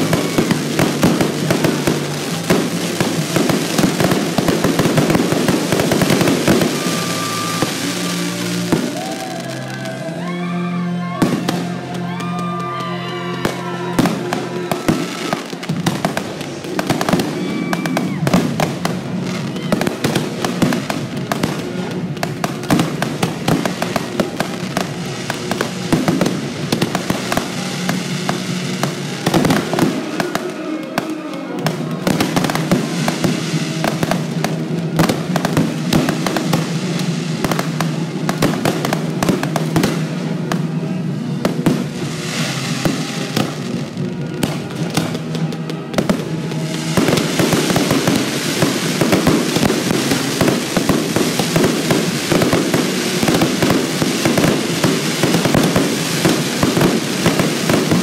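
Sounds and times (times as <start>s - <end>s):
fireworks bursting and crackling: 0.0s - 58.0s
music playing: 0.0s - 58.0s.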